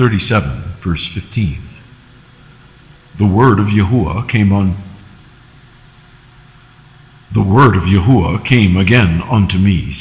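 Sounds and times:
faint low hum and hiss: 0.0 - 10.0.

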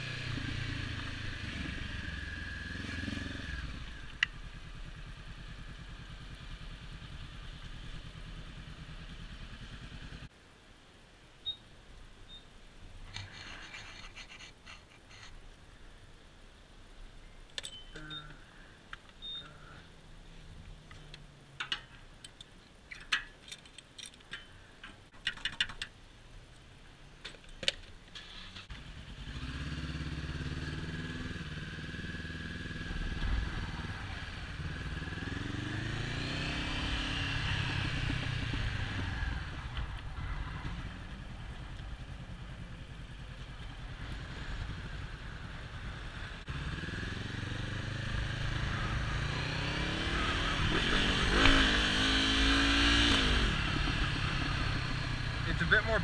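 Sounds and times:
motorcycle engine accelerating: 0.0 - 10.3, 28.5 - 56.0.

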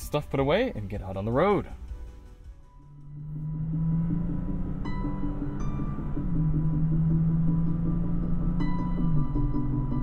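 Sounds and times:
electronic music in car: 0.0 - 10.0
road noise: 1.6 - 10.0.

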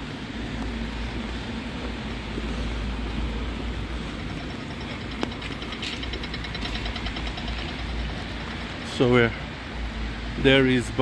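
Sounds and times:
traffic on wet roads: 0.0 - 11.0
fast high ticking: 2.9 - 9.2.

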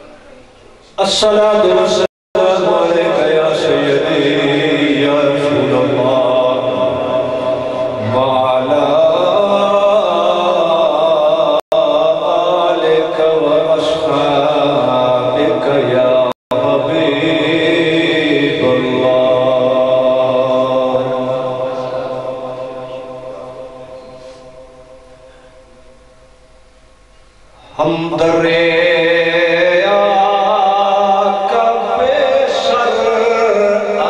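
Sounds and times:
man chanting into a microphone: 0.8 - 25.6, 27.6 - 34.0.

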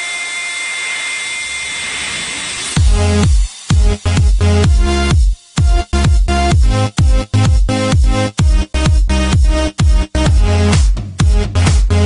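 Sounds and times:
synthesized hiss with high tone: 0.0 - 4.6.

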